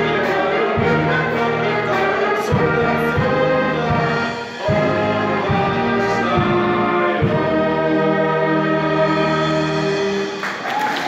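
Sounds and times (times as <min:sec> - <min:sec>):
group singing a carol: 0:00.0 - 0:10.2
wind band playing: 0:00.0 - 0:11.0.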